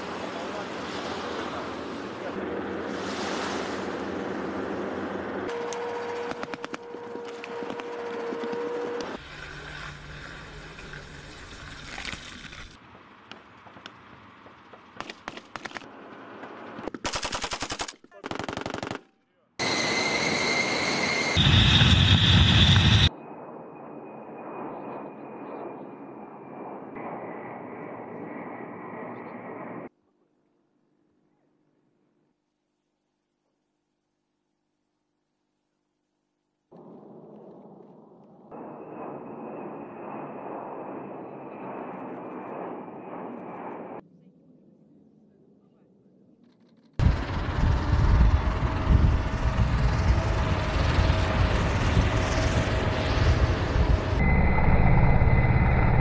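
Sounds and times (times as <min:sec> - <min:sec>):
machine-gun bursts: 0:17.0 - 0:19.0
steady noise with high whine: 0:51.8 - 0:56.0.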